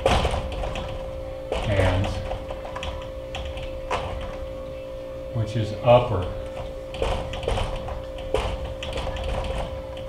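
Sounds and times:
marker squeaking on whiteboard: 0:07.0 - 0:10.0.

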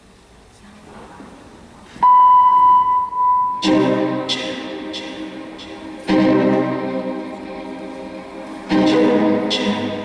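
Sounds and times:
faint hall room noise: 0:00.0 - 0:10.0
loud electronic beep: 0:02.0 - 0:03.9.

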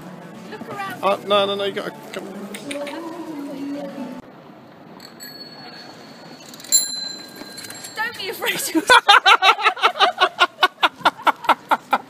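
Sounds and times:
bicycle bell ringing: 0:05.0 - 0:08.7.

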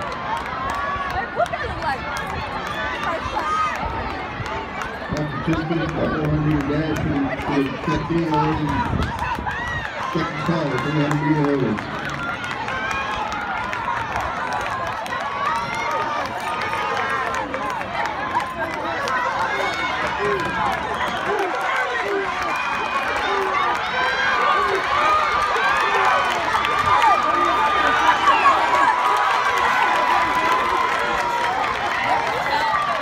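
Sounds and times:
crowd chattering and calling out: 0:00.0 - 0:33.0.

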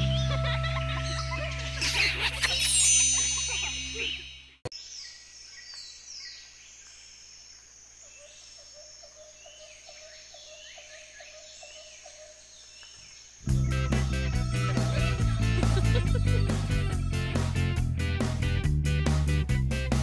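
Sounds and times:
music: 0:00.0 - 0:04.2, 0:13.5 - 0:20.0
birds chirping: 0:00.0 - 0:17.8.

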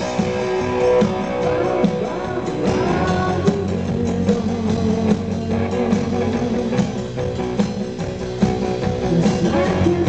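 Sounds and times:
bass guitar: 0:00.0 - 0:10.0
electric guitar: 0:00.0 - 0:10.0
steady drum beat: 0:00.0 - 0:10.0.

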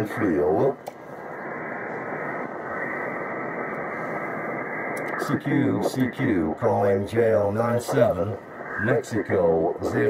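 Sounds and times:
radio receiver hiss: 0:00.0 - 0:10.0.

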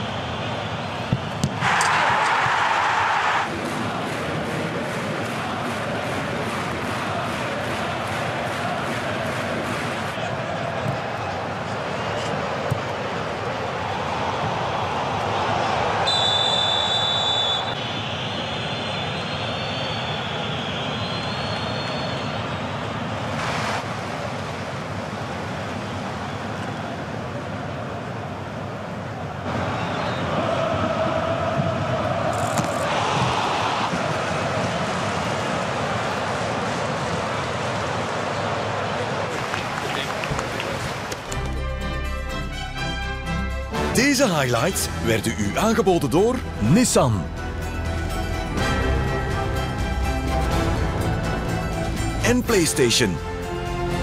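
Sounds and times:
football match broadcast noise: 0:00.0 - 0:41.6, 0:43.7 - 0:54.0
shrill referee's whistle: 0:16.0 - 0:22.5.

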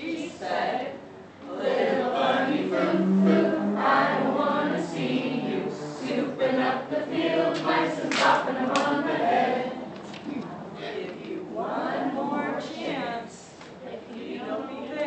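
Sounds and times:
group of people singing: 0:00.0 - 0:15.0.

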